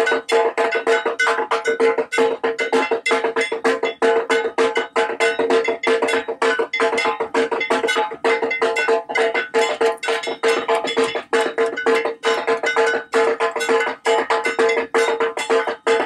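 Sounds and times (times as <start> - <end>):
bell-metal gong beaten fast: 0.0 - 16.0.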